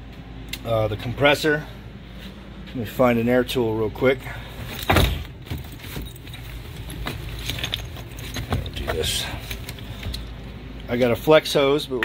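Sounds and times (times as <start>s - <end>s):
metal tools clinking in bag: 4.6s - 10.4s.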